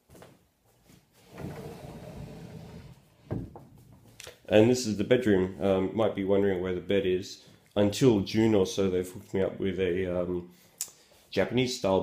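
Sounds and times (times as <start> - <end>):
sliding door rolling on track: 1.3 - 3.4.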